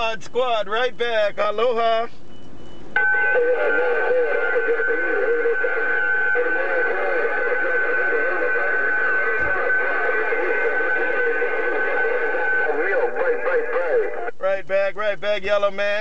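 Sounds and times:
distorted radio voice: 3.0 - 16.0.

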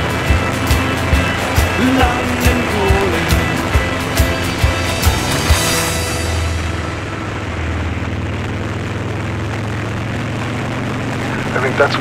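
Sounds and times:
road noise: 0.0 - 12.0
vehicle engine droning: 0.0 - 12.0.

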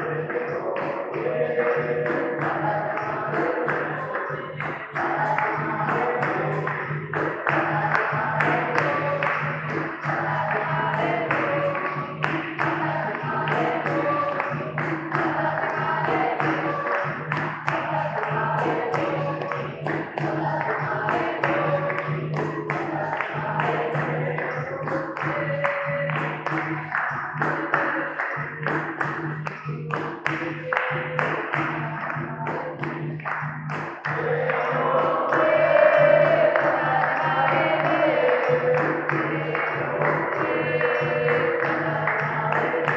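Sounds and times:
call-and-response singing: 0.0 - 42.9
hand drum beating: 0.0 - 42.9
hand-clapping: 0.0 - 42.9.

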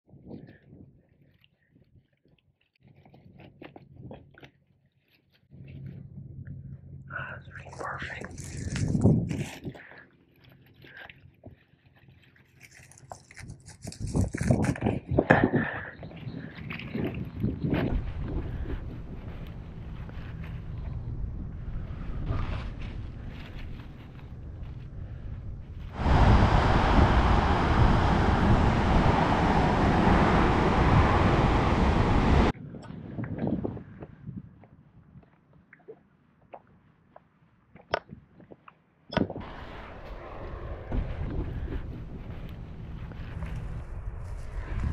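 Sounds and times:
wind on microphone: 5.8 - 9.8, 13.3 - 35.3, 39.2 - 44.9
hands rustling dry grass: 7.6 - 14.8, 16.2 - 26.0.

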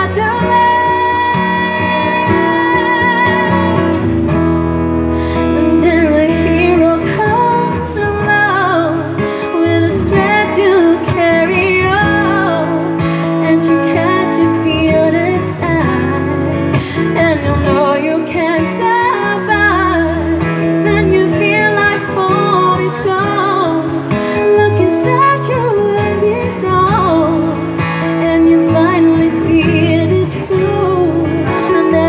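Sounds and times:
acoustic guitar strummed and plucked: 0.0 - 32.0
woman singing into a microphone: 0.0 - 32.0.

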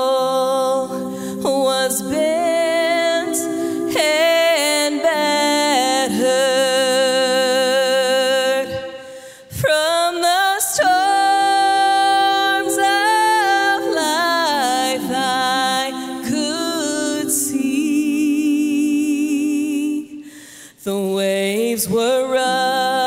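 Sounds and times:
women singing in harmony: 0.0 - 23.0.

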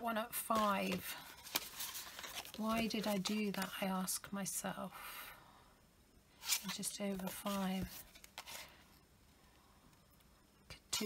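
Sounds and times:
person speaking: 2.5 - 4.2, 6.6 - 8.0.

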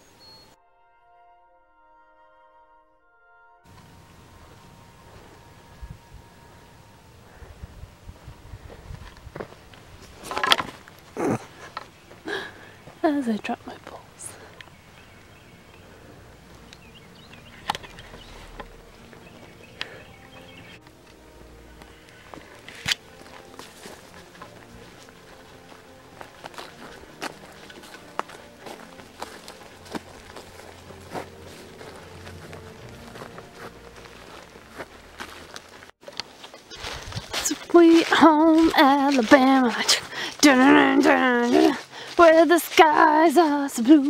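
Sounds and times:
faint background music: 3.3 - 35.8, 36.4 - 44.0
footsteps on dirt trail: 3.7 - 44.0.

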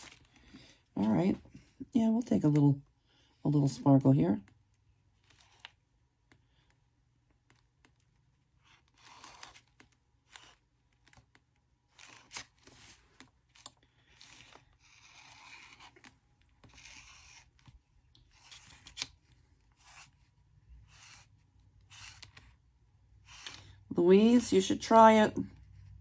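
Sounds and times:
applicator dabbing and rubbing paper: 7.4 - 24.7.

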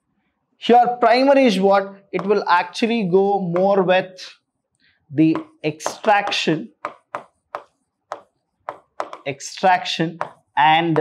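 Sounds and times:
marker pen on whiteboard: 0.0 - 11.0.

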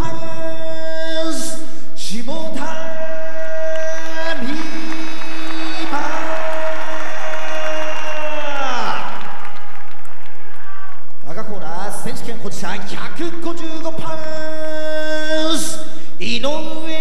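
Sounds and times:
crowd cheering and applause: 3.4 - 11.3.

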